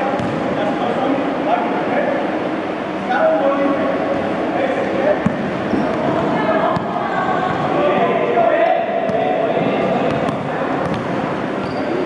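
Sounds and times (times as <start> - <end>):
basketball bouncing on indoor court: 0.2 - 0.4, 9.0 - 11.8
kids talking: 5.6 - 10.8.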